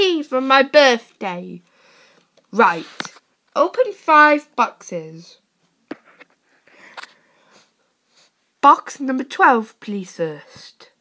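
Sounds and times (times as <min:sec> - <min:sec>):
faint breath: 0:01.7 - 0:02.3, 0:06.4 - 0:08.4.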